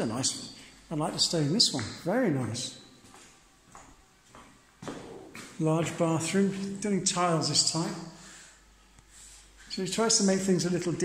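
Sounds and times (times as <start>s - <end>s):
footsteps on tile floor: 3.0s - 6.8s.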